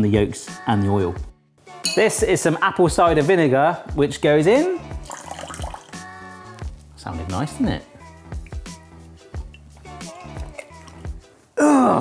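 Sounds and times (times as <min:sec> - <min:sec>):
background music: 0:00.0 - 0:12.0
liquid splash and trickle: 0:05.0 - 0:06.0.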